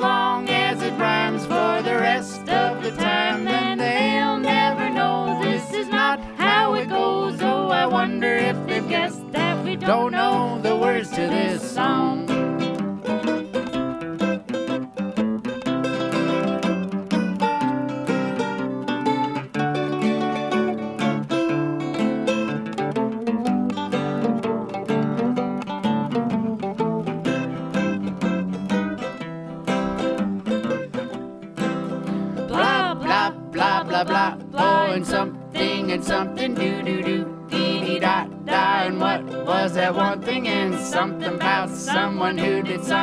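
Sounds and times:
person singing: 0.0s - 12.8s, 32.4s - 43.0s
acoustic guitar strumming: 0.0s - 43.0s
mandolin picking: 0.0s - 43.0s.

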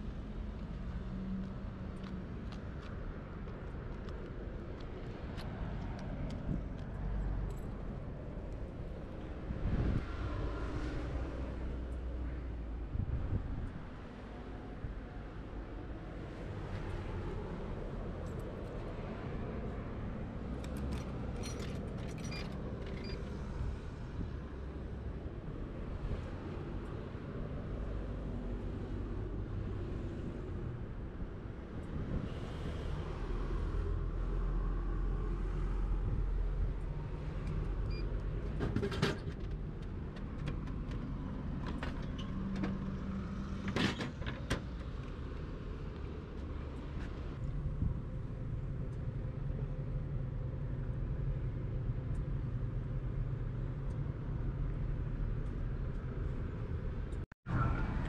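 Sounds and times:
low rumble of street traffic: 0.0s - 58.0s.

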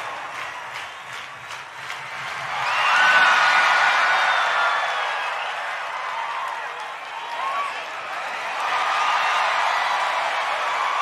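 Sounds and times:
audience clapping and cheering: 0.0s - 11.0s.

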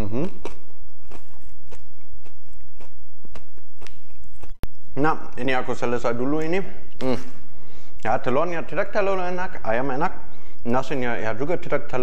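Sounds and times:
person chewing crispy food: 0.0s - 4.6s.

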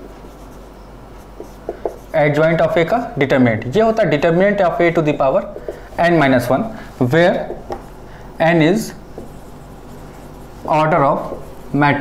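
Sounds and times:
marker writing on whiteboard: 0.0s - 3.0s, 4.2s - 12.0s.

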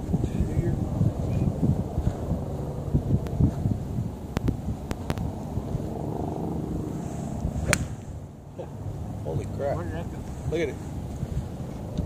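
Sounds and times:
wind rumbling on microphone: 0.0s - 12.0s
golf club striking ball: 7.5s - 8.3s.

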